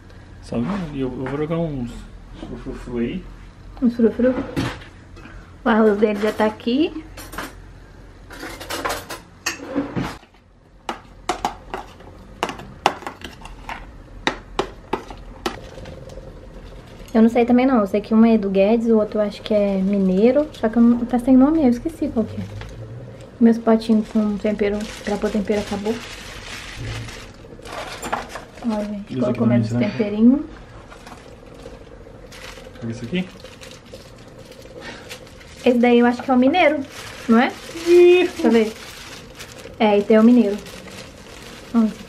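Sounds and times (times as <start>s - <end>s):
soft scraping and rustling: 22.3s - 29.3s, 30.0s - 42.0s.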